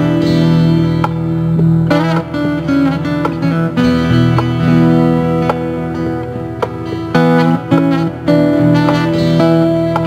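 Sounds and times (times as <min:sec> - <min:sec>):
acoustic guitar plucked notes and chords: 0:00.0 - 0:10.0.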